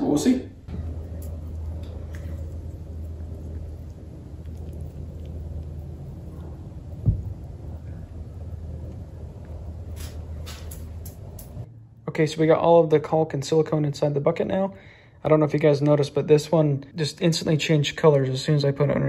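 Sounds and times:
steady low rumble: 0:00.0 - 0:15.2.

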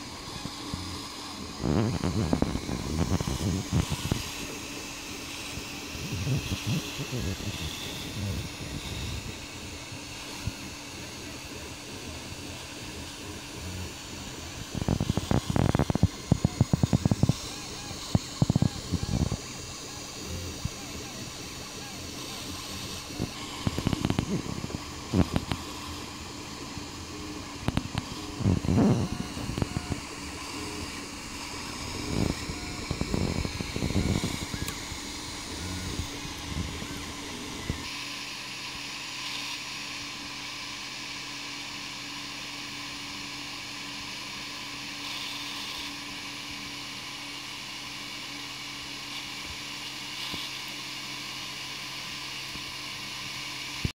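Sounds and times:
fan hum and hiss: 0:00.0 - 0:53.9.

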